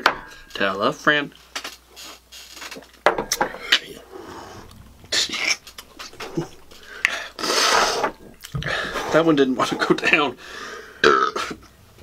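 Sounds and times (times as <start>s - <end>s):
people gasping and exhaling: 3.3s - 9.3s, 10.4s - 11.0s.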